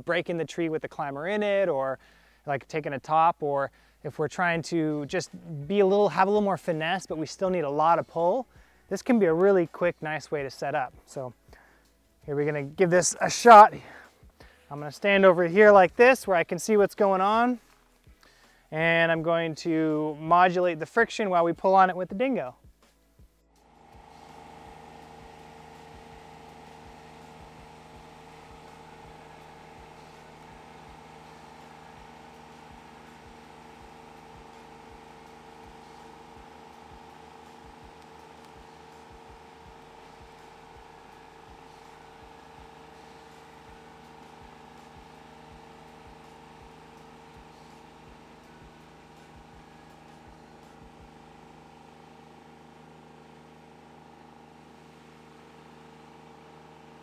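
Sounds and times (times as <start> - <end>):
engine running steady hum: 23.2 - 57.0.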